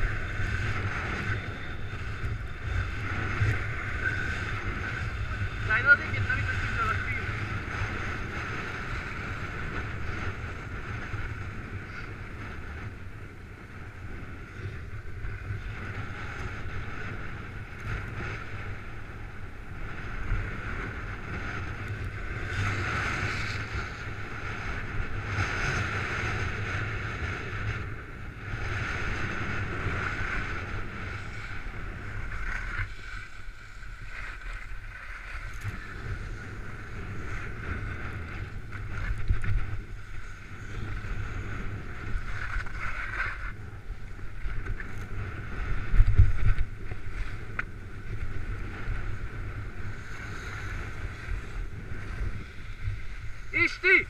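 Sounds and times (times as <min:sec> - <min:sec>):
wind rumbling on microphone: 0:00.0 - 0:54.0
skis scraping over snow: 0:27.4 - 0:54.0.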